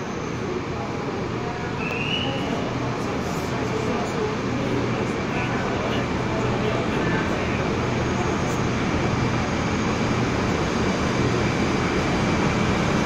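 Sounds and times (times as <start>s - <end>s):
locomotive low drone: 0.0s - 13.0s
train rumbling in underground station: 0.0s - 13.0s.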